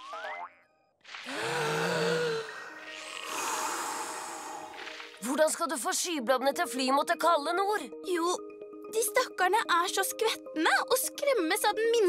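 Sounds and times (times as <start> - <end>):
child humming om: 1.3 - 2.6.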